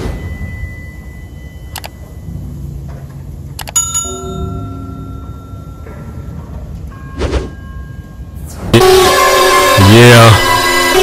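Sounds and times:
bell chime: 0:00.0 - 0:02.5, 0:03.7 - 0:08.4.

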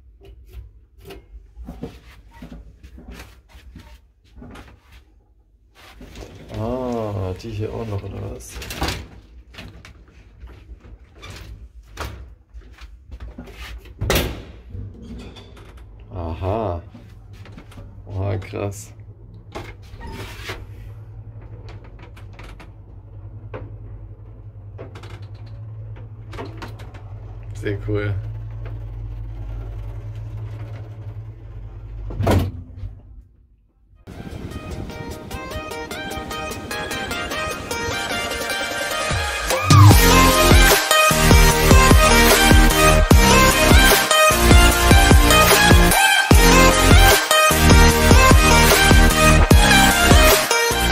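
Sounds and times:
lift running with low hum: 0:15.6 - 0:33.2, 0:34.1 - 0:50.9.

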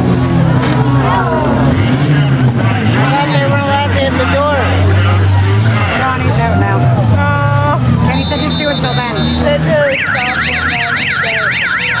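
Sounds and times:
siren in fast yelp pattern: 0:08.0 - 0:12.0.

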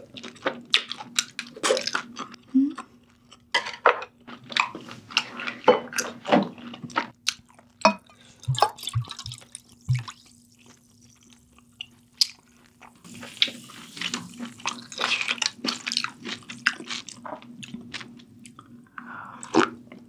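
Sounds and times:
liquid splashing and dripping: 0:08.4 - 0:11.2.

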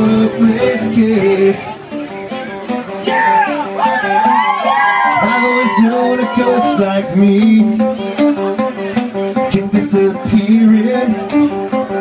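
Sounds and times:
person singing: 0:00.0 - 0:02.2, 0:05.0 - 0:12.0
acoustic guitar strumming: 0:00.0 - 0:12.0.

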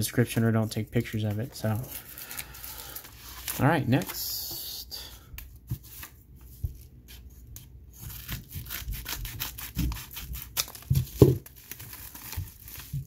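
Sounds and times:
paper mailer crinkling and tearing: 0:08.1 - 0:13.0.

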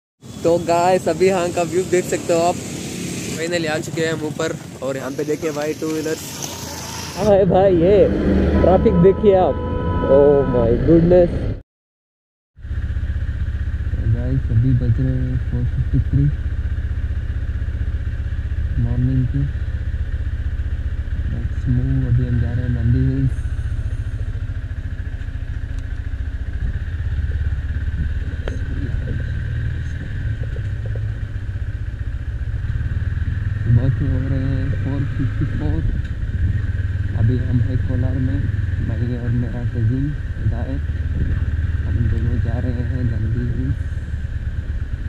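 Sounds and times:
motorcycle engine idling: 0:00.2 - 0:07.7, 0:12.6 - 0:45.0
man speaking: 0:00.4 - 0:02.6, 0:03.3 - 0:06.2, 0:07.2 - 0:11.4, 0:14.0 - 0:16.4, 0:18.8 - 0:19.5, 0:21.3 - 0:23.4, 0:28.0 - 0:30.9, 0:33.7 - 0:35.9, 0:37.2 - 0:40.8, 0:41.9 - 0:43.8
wind on microphone: 0:35.8 - 0:36.7, 0:41.1 - 0:41.5.

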